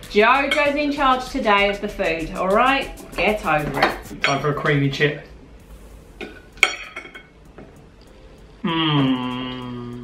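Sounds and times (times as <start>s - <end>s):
cutlery clinking on plates: 6.2s - 7.4s.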